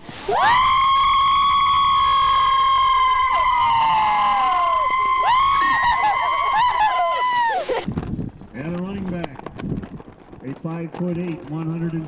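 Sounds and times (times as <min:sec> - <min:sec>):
cheerleaders screaming: 0:00.2 - 0:07.8.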